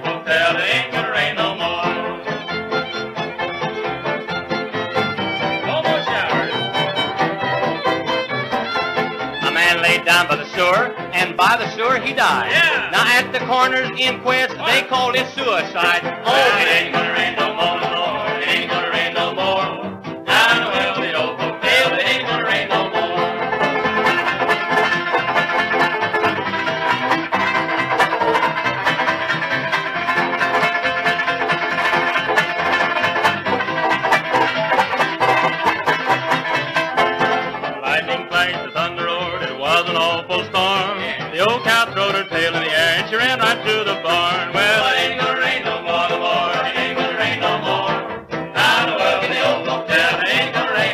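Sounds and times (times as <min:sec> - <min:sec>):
man singing: 0:00.0 - 0:02.4, 0:05.7 - 0:06.7, 0:09.4 - 0:23.4, 0:37.8 - 0:48.0
string band instrumental: 0:00.0 - 0:50.9.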